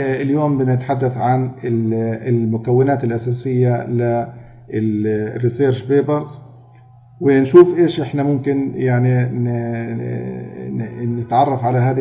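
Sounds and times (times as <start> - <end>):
man holding long vowel: 7.2 - 12.0.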